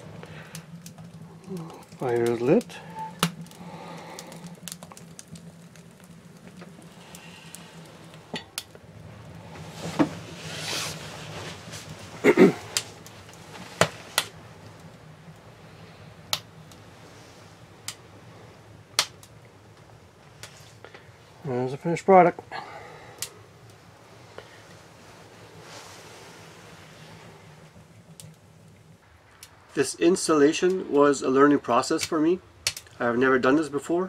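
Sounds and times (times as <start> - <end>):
fire popping: 0.0 - 34.0
low steady hum: 0.0 - 34.0.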